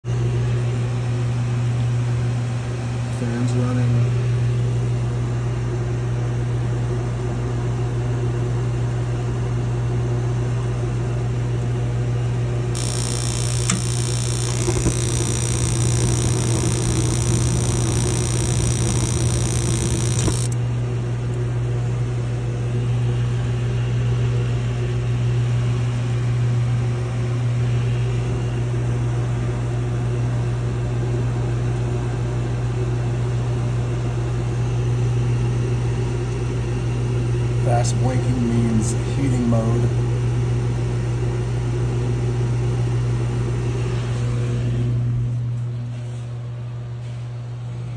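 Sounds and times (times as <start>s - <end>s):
gas burners hissing: 12.8s - 20.6s
heater blower humming: 12.8s - 20.6s.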